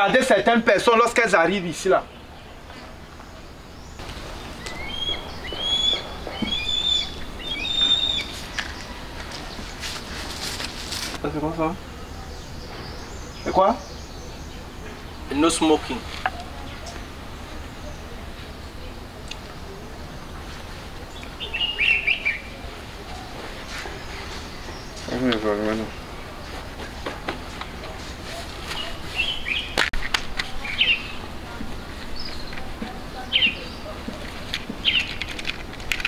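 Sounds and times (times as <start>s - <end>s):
songbird singing: 0.0s - 36.0s
bird chirping: 0.8s - 26.8s, 27.5s - 29.8s, 30.5s - 35.5s.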